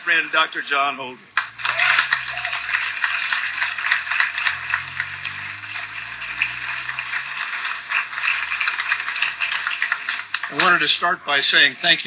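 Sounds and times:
audience applause: 1.3 - 11.0.

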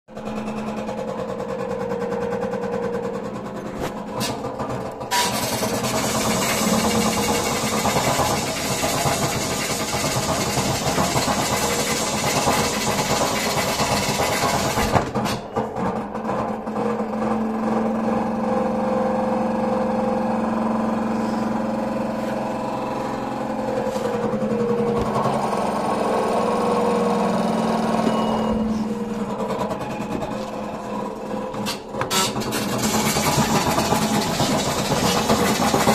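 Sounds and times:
washing machine drum spinning: 0.1 - 35.9.

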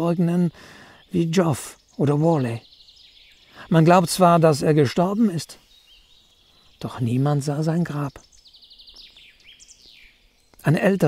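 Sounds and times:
man speaking: 0.0 - 2.6, 3.6 - 5.6, 6.8 - 8.2, 10.6 - 11.0
songbird singing trills: 0.0 - 11.0.

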